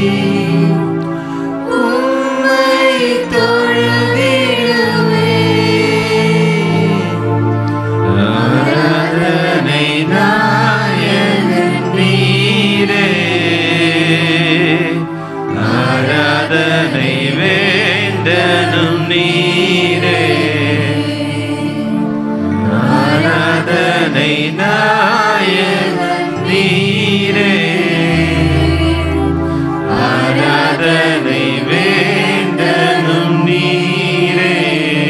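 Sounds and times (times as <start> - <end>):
held accompaniment chords: 0.0 - 35.0.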